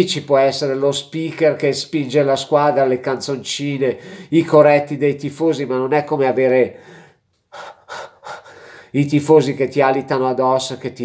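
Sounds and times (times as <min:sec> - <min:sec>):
man speaking: 0:00.0 - 0:06.8, 0:08.0 - 0:11.0
man breathing: 0:04.0 - 0:04.3, 0:06.7 - 0:09.0.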